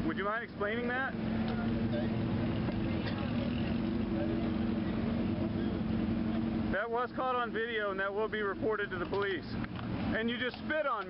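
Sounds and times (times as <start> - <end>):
vehicle engine idling: 0.0 - 11.0.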